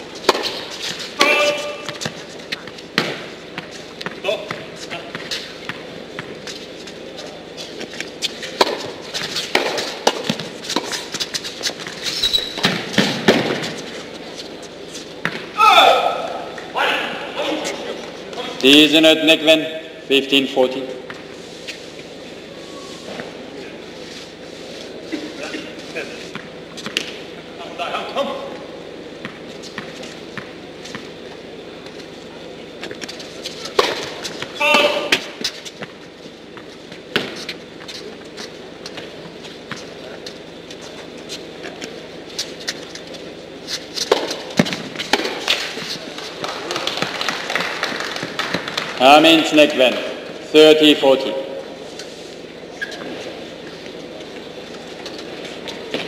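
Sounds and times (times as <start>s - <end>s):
tennis balls struck by rackets: 0.2s - 6.4s, 8.4s - 12.0s, 12.6s - 13.9s, 15.2s - 15.6s, 32.8s - 36.0s, 36.6s - 37.6s, 43.9s - 45.9s
tennis balls bouncing on hard court: 0.2s - 6.5s, 8.2s - 13.8s, 15.2s - 15.5s, 29.2s - 31.1s, 32.8s - 36.0s, 36.6s - 37.9s, 44.0s - 45.9s
player shouts: 1.2s - 1.8s, 15.6s - 17.6s, 34.6s - 35.1s.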